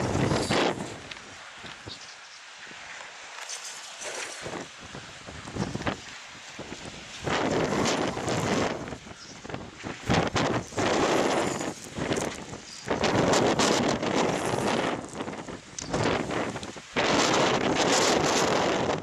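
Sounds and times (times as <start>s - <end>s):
gusty wind buffeting microphone: 0.0s - 2.0s, 4.0s - 19.0s.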